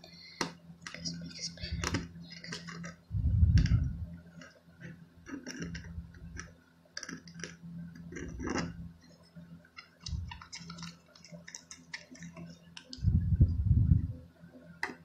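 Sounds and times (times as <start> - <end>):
loud low rumble: 3.1 - 4.1, 13.0 - 14.2
stick stirring sticky slime: 5.3 - 8.8, 9.8 - 13.0.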